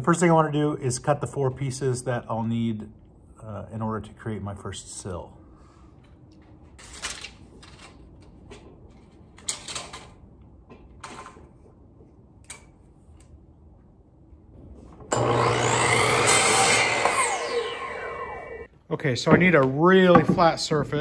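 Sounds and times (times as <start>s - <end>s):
miter saw cutting wood: 15.1s - 18.7s
wood knocking: 19.2s - 21.0s.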